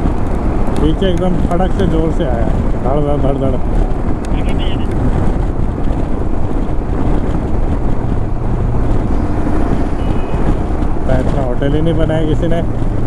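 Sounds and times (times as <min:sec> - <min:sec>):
motorcycle engine: 0:00.0 - 0:13.0
tyres on wet road: 0:00.0 - 0:13.0
wind noise on microphone: 0:00.0 - 0:13.0.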